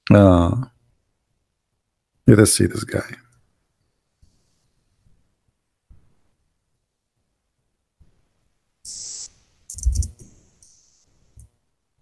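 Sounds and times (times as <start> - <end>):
brief hisses: 8.9 - 11.1
microphone handling clicks: 9.7 - 10.4.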